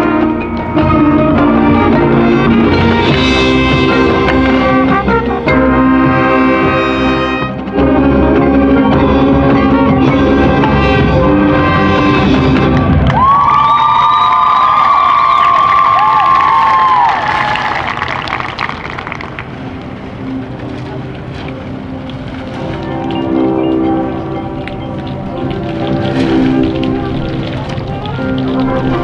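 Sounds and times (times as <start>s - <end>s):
marching band playing: 0.0s - 13.8s, 16.0s - 29.0s.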